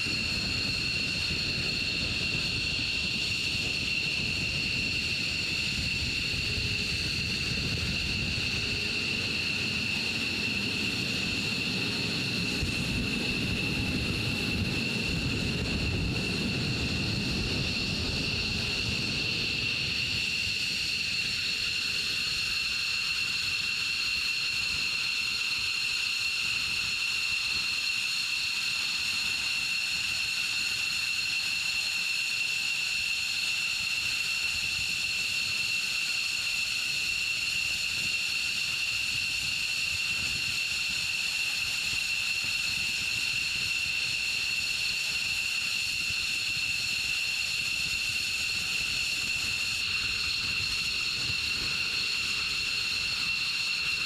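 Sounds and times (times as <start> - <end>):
jet engines idling: 0.0 - 23.8.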